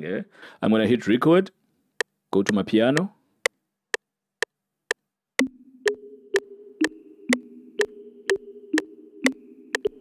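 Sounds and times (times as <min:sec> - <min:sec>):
metronome ticking: 0:02.0 - 0:10.0.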